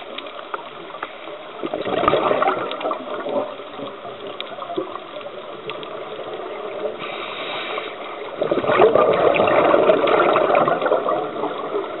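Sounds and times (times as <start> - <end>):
underwater bubbles gurgling: 0.0 - 12.0.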